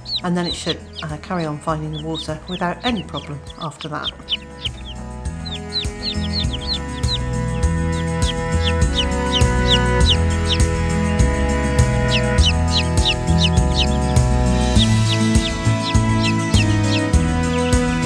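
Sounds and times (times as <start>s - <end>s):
background music: 0.0s - 18.0s
chicks peeping: 0.0s - 18.0s.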